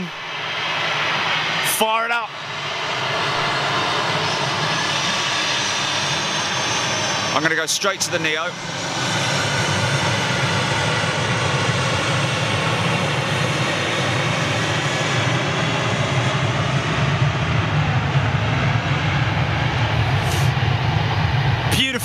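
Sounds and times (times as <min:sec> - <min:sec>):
jet engines roaring with whine: 0:00.0 - 0:22.0.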